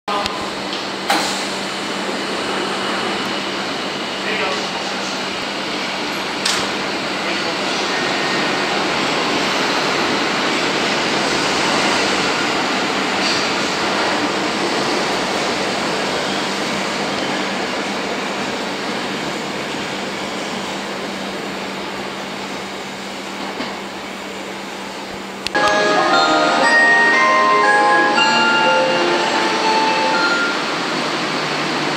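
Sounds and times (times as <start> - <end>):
chiming departure melody: 25.5 - 31.2.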